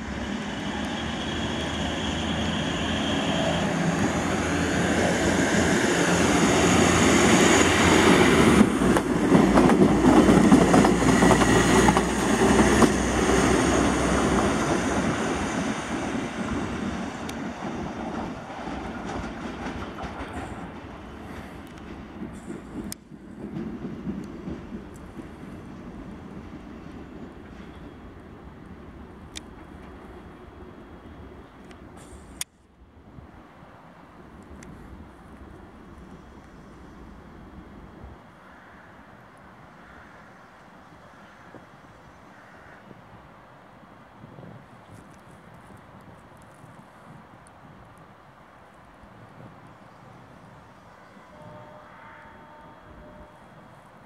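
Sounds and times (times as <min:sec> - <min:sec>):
diesel railbus engine passing: 0:00.0 - 0:46.0.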